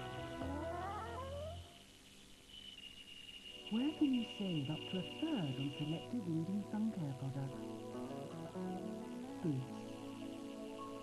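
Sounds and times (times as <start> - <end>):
steady high whine: 0.0 - 11.0
tape hiss: 0.0 - 11.0.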